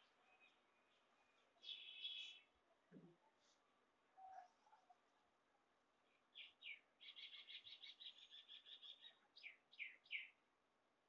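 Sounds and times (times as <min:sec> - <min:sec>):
bird song with whistles and trill: 0:00.2 - 0:02.5, 0:06.4 - 0:10.4.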